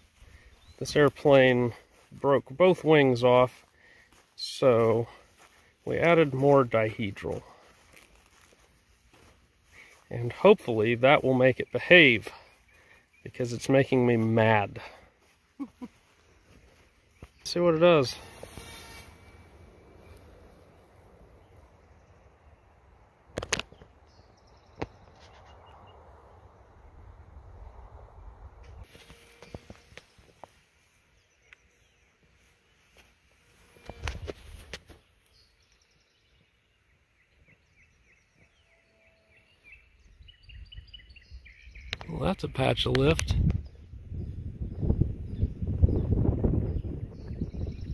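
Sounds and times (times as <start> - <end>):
wind rumbling on microphone: 22.9 - 28.9, 40.0 - 47.9
faint bird chirps: 35.0 - 42.2.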